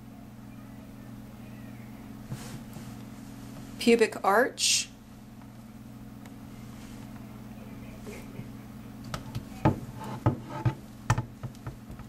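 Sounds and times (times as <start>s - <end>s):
low hum of room tone: 0.0s - 12.0s.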